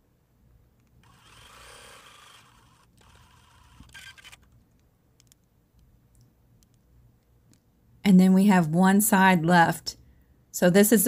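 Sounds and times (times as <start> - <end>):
sewing machine stitching: 1.0 - 4.6
short mechanical whirr: 1.0 - 4.6
soft clicks: 3.8 - 7.7.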